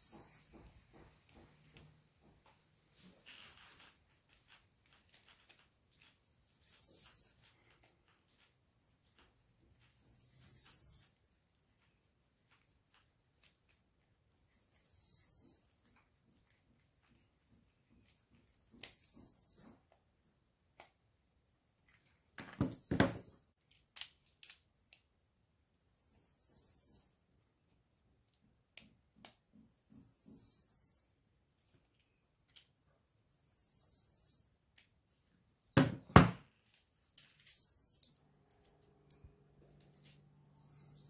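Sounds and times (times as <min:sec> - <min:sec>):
plastic holder knocking on workbench: 0:35.8 - 0:36.4.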